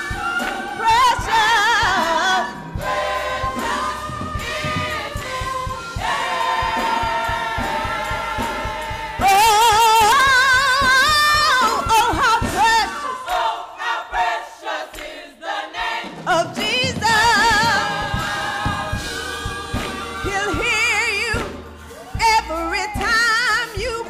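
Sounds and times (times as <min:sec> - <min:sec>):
choir singing: 0:00.0 - 0:22.2
woman singing gospel with vibrato: 0:00.0 - 0:24.0.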